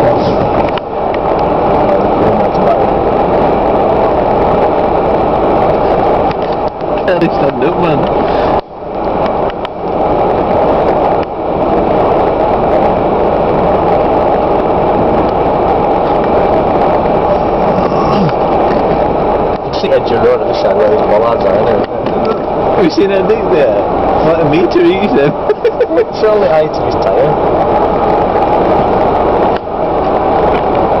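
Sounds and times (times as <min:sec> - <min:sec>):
vehicles rumbling in snow: 0:00.0 - 0:31.0.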